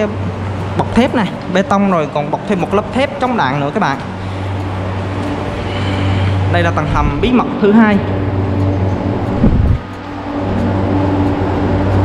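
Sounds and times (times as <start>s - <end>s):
ventilation fans humming: 0.0s - 12.0s.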